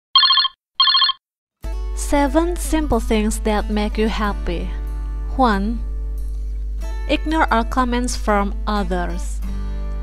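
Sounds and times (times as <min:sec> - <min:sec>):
electronic telephone ring: 0:00.2 - 0:01.2.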